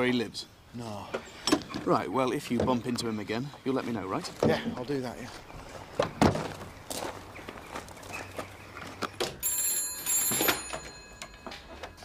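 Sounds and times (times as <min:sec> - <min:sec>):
telephone bell ringing: 0:09.4 - 0:12.0.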